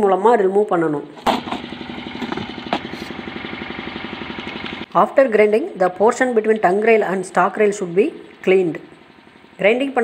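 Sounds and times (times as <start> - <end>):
engine idling: 1.2 - 5.0, 6.1 - 10.0.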